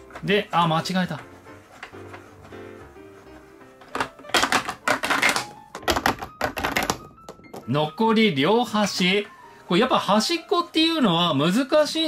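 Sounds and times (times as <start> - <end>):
plastic capsule rattling down slide: 3.9 - 7.0.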